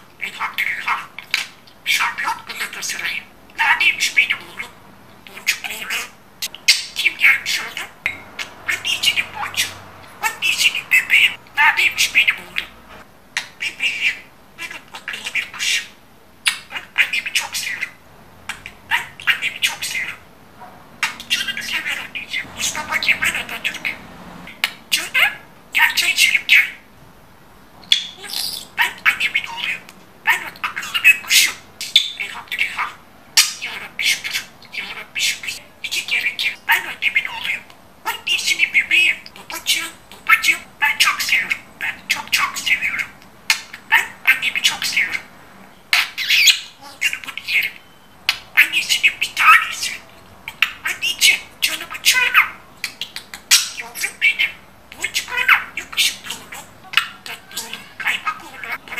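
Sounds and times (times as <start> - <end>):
budgerigar warbling and chattering: 0.2 - 12.8, 13.4 - 20.2, 21.0 - 26.8, 27.8 - 45.3, 45.9 - 58.9.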